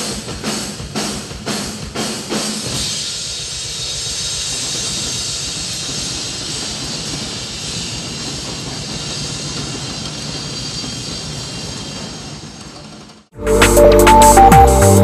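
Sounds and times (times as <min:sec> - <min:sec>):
cymbals washing: 0:00.0 - 0:12.1
drums rolling: 0:00.0 - 0:15.0.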